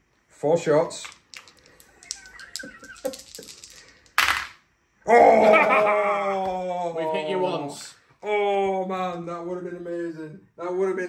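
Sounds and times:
dice shaken in hand: 1.0s - 4.5s
dice clattering into wooden tray: 1.0s - 4.6s.

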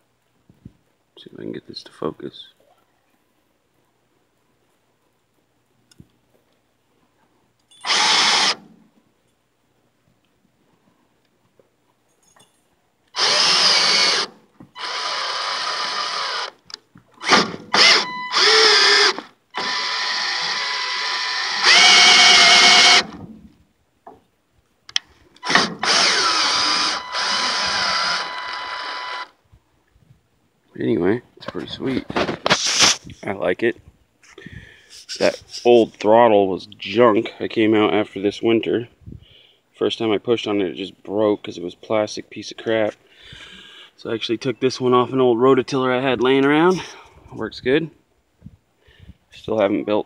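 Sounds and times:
cordless drill running: 7.8s - 8.6s, 13.2s - 16.6s, 17.2s - 23.2s, 25.4s - 29.3s.

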